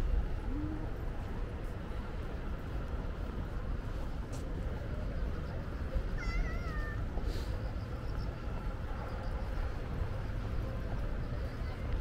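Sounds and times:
low outdoor rumble: 0.0s - 12.0s
meow-like animal call: 6.2s - 7.0s.

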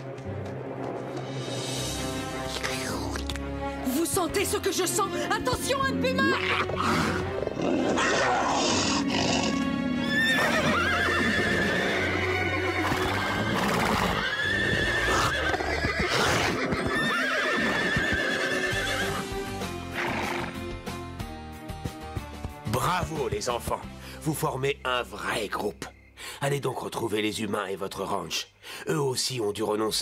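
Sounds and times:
dramatic background music: 0.0s - 14.2s
cartoon horses neighing: 6.2s - 19.3s.

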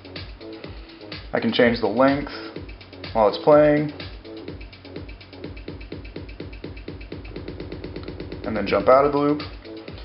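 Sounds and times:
stuttering electronic dance loop: 2.1s - 10.0s.

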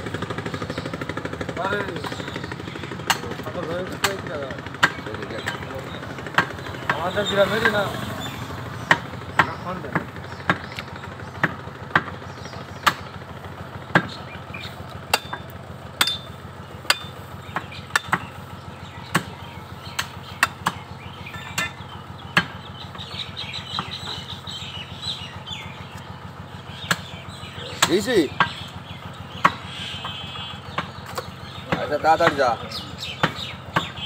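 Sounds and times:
cleaver chopping meat: 3.0s - 7.3s, 8.8s - 13.2s, 13.9s - 16.2s, 16.8s - 18.4s, 19.0s - 22.6s, 29.3s - 34.0s.

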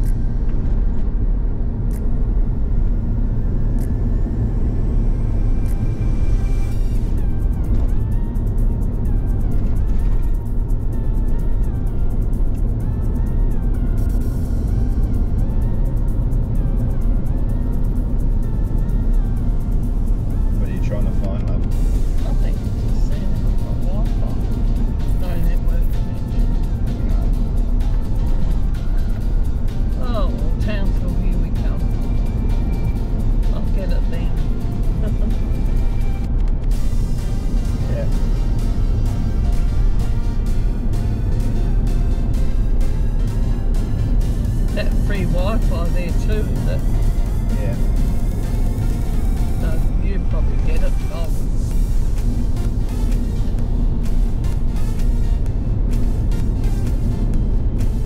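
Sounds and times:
vehicle rumble on gravel road: 0.0s - 58.0s
music with singing voice: 3.7s - 58.0s.

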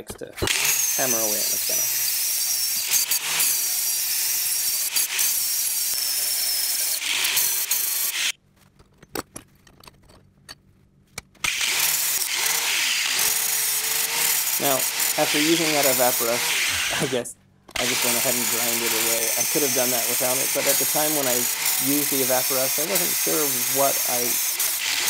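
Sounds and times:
angle grinder grinding metal: 0.4s - 8.4s, 11.4s - 25.0s.

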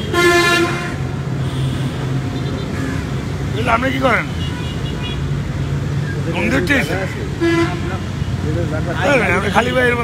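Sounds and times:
vehicle horn toot: 0.0s - 2.8s.

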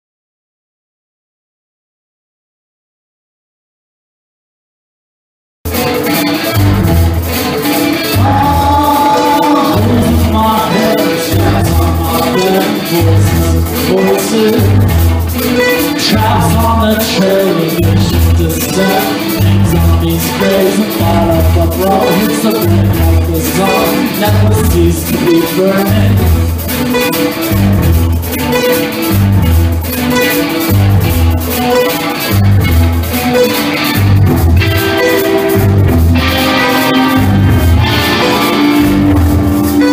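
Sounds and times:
rock band playing live: 5.7s - 39.9s
pulsing low bass: 6.6s - 7.4s, 8.2s - 10.7s, 11.3s - 12.2s, 13.0s - 13.9s, 14.6s - 17.0s, 19.4s - 20.2s, 21.0s - 22.0s, 22.6s - 23.4s, 24.2s - 25.1s, 25.9s - 28.5s, 29.1s - 30.0s, 30.7s - 31.5s, 32.3s - 33.2s, 34.0s - 36.4s, 37.1s - 38.2s, 38.8s - 39.9s.

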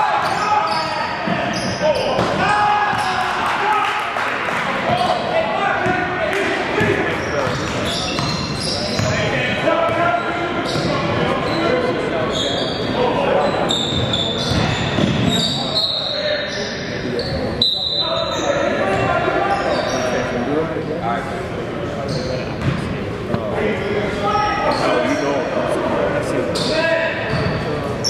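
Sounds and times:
players shouting: 0.0s - 7.6s.

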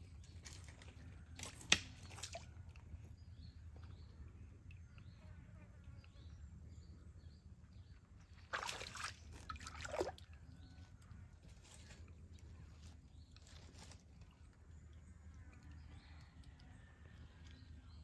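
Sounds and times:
muddy water sloshing: 0.1s - 3.0s, 8.4s - 10.5s.

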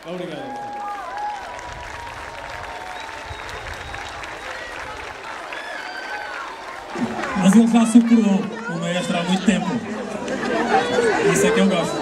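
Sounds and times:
audience clapping: 0.0s - 11.6s
voices calling out: 4.1s - 12.0s.

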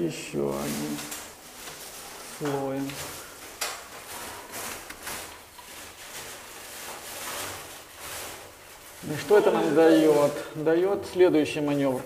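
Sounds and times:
paintbrush swishing: 0.1s - 10.6s.

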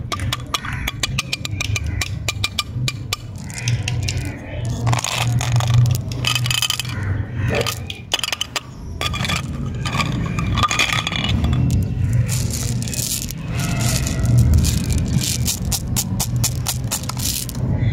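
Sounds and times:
jelly beans clicking and rattling: 0.0s - 17.7s
plastic tubes scraping: 0.0s - 17.7s.

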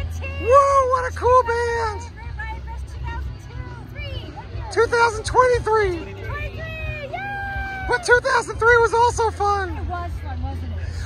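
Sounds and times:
quiet voices talking: 0.0s - 11.0s.

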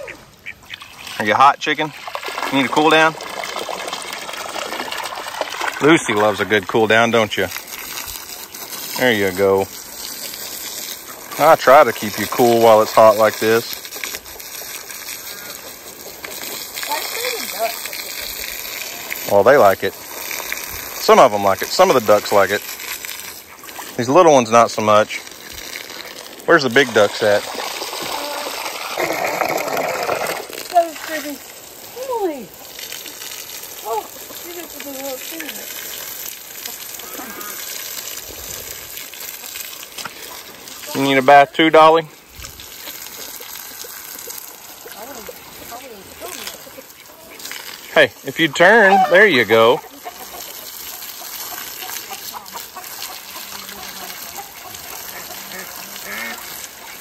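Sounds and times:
garden hose spraying water: 0.0s - 57.0s
water splashing on ground: 0.0s - 57.0s
chickens clucking: 10.0s - 19.2s, 36.5s - 37.5s, 48.4s - 57.0s.

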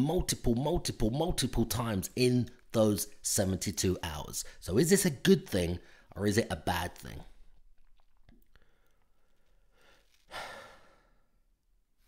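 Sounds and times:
man breathing: 8.5s - 11.5s.

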